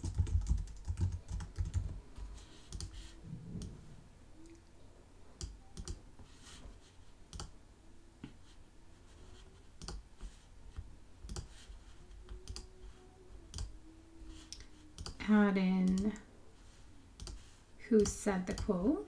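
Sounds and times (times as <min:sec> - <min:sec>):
mouse and keyboard clicking: 0:11.3 - 0:11.5, 0:14.5 - 0:15.2.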